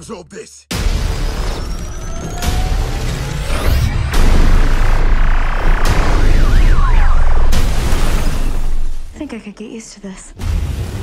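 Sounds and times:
film score: 0.0s - 11.0s
heavy crash hit: 0.7s - 9.2s
deep rumble of blast and debris: 2.5s - 9.2s.

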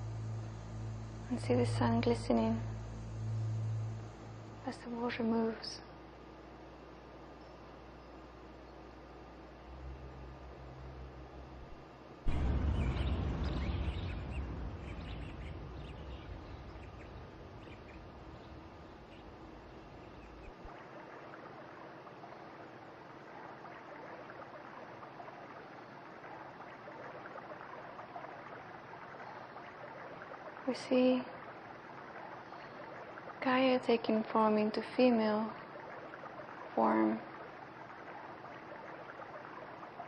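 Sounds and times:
faint low hum: 0.0s - 40.0s
river water running: 0.0s - 40.0s.

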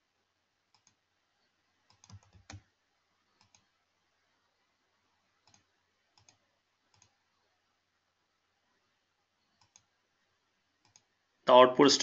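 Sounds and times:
computer mouse clicks: 0.7s - 1.0s, 1.8s - 2.7s, 3.4s - 3.7s, 5.4s - 7.2s, 9.5s - 9.9s, 10.8s - 11.1s.

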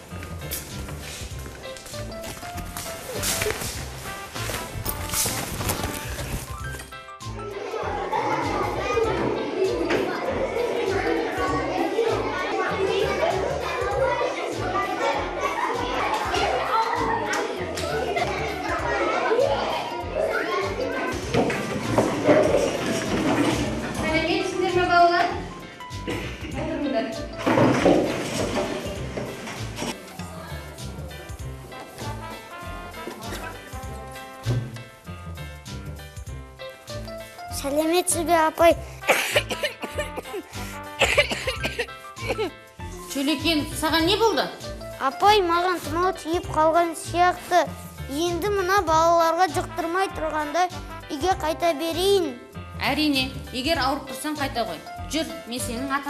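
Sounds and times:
background music with bass notes: 0.0s - 56.0s
young children chattering: 7.3s - 27.7s, 29.9s - 34.4s, 37.4s - 43.2s
child coughing: 39.0s - 42.6s.

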